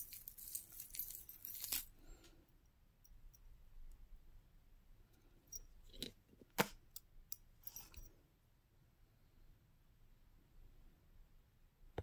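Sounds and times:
metal chain jingling: 0:00.0 - 0:01.9, 0:07.6 - 0:08.1.

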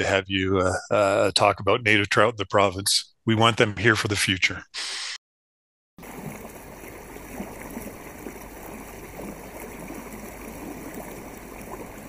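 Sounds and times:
water lapping against canoe hull: 0:06.0 - 0:12.0.

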